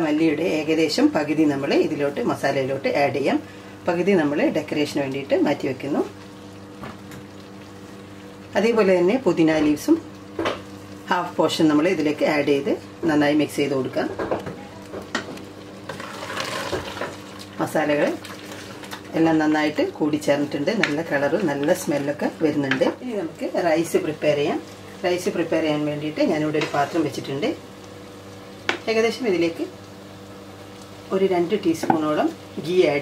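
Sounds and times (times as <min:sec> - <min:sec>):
masala sizzling: 0:00.0 - 0:33.0
wooden spoon stirring in pot: 0:14.2 - 0:25.3, 0:26.1 - 0:27.4
steady low hum: 0:16.8 - 0:33.0.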